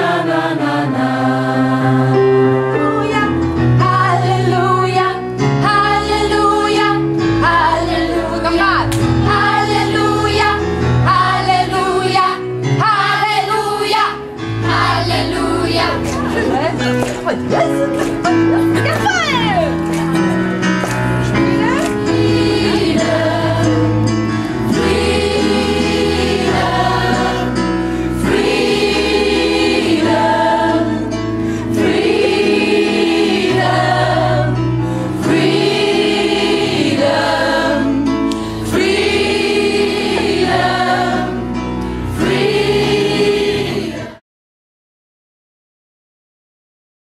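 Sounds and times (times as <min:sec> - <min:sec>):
gospel choir singing: 0:00.0 - 0:18.9, 0:20.5 - 0:44.2.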